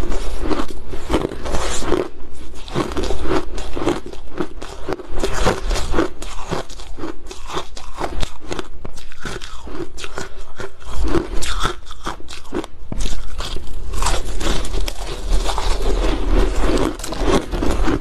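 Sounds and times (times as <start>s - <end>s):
ice crunching while chewed: 0.0s - 18.0s.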